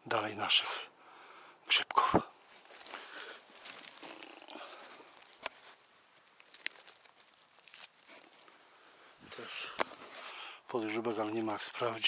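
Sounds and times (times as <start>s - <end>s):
footsteps rustling undergrowth: 2.4s - 12.0s
twigs snapping underfoot: 2.5s - 10.2s.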